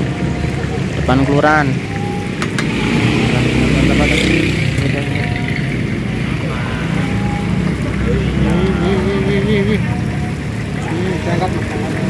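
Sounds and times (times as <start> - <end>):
motor traffic rumble: 0.0 - 12.0.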